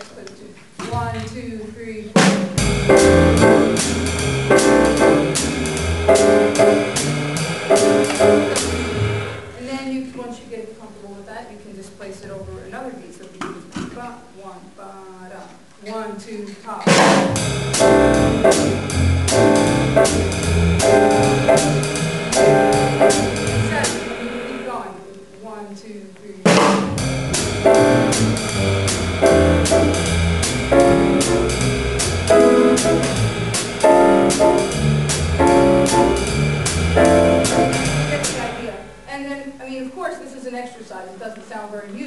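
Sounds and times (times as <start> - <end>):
jazz piano trio swing: 2.6 - 9.4, 16.9 - 24.5, 26.5 - 38.7
cymbal crash: 2.6 - 9.6, 17.0 - 24.9, 26.6 - 39.6.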